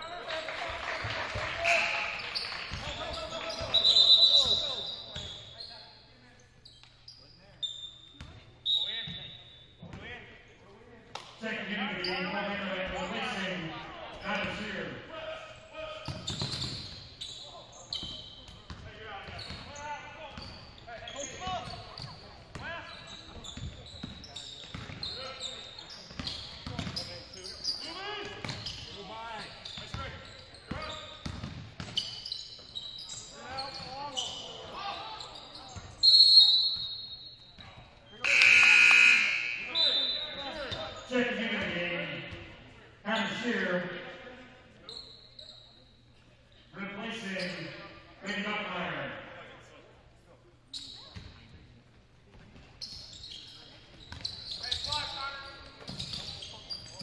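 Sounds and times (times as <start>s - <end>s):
shrill whistle blast: 3.7s - 5.0s, 36.0s - 37.1s, 38.2s - 40.4s.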